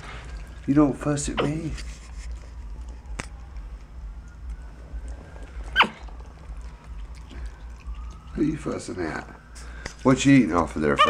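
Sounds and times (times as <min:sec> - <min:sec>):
monkey high call: 0:05.7 - 0:06.0.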